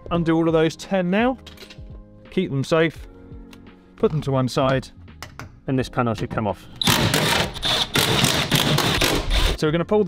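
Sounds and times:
impact driver rattling: 6.8 - 9.6.

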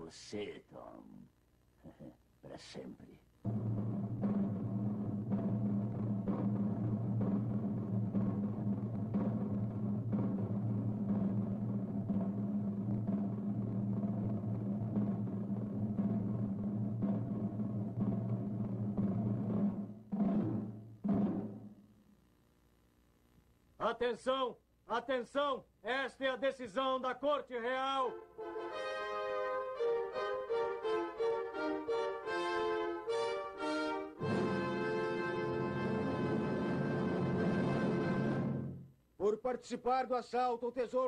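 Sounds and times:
drum strokes: 3.4 - 21.9, 27.9 - 39.0
low drum roll: 3.4 - 21.9, 34.2 - 39.0.

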